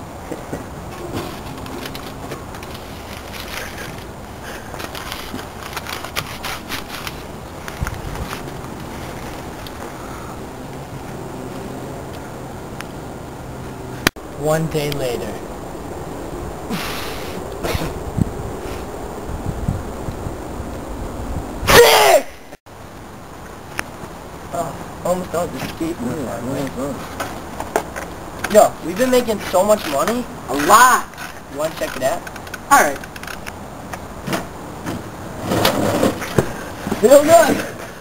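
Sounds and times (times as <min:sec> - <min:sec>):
rustling: 0:00.2 - 0:11.8
person sneezing: 0:16.7 - 0:18.0.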